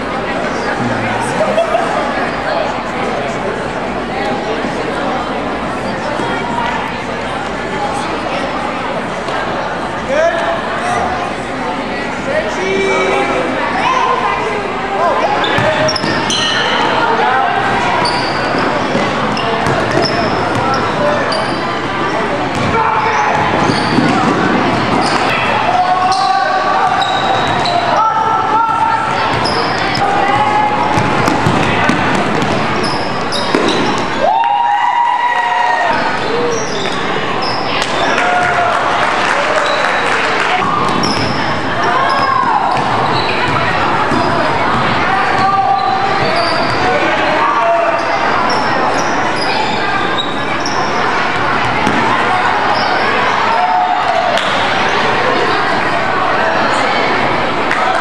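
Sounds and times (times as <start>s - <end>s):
crowd chatter: 0.0s - 58.0s
sneakers squeaking: 15.2s - 34.2s, 35.9s - 38.6s, 39.4s - 56.0s.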